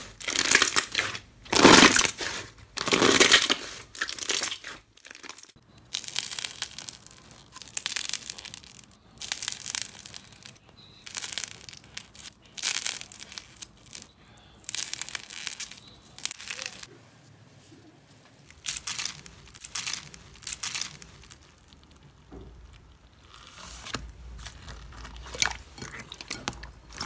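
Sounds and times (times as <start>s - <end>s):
slime crackling and popping: 0.0s - 16.9s, 18.4s - 27.0s.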